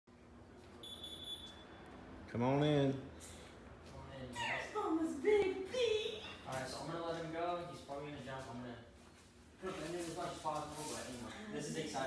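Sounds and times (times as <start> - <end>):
high-pitched door alert beep: 0.8 - 1.6.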